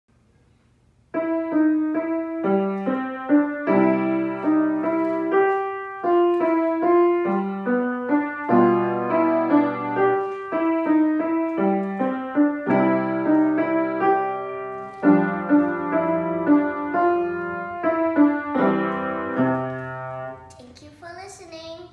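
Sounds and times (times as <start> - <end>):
piano playing a waltz: 1.1 - 20.5.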